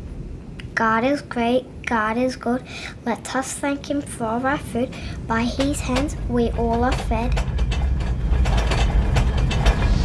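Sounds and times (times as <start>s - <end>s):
deep rumble: 4.6s - 10.0s
tableware rattling: 5.6s - 10.0s.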